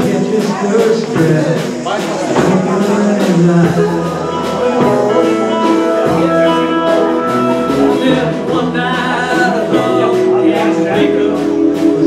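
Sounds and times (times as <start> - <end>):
live band playing dance tune: 0.0 - 12.0
person singing: 0.0 - 12.0.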